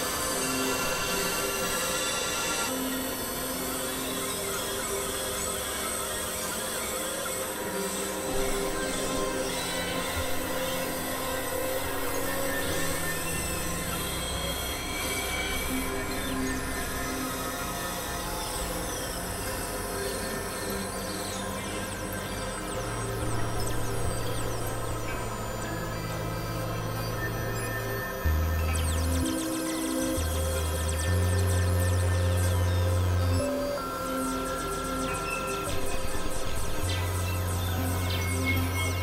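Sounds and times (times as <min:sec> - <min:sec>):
screechy synthesizer drone: 0:00.0 - 0:39.0.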